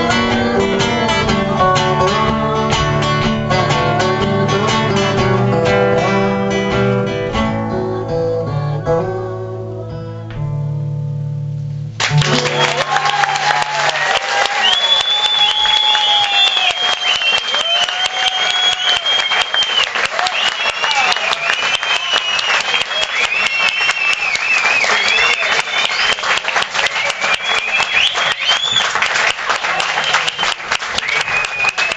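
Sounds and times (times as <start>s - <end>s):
audience applauding: 12.0s - 31.9s
people cheering: 12.0s - 31.9s.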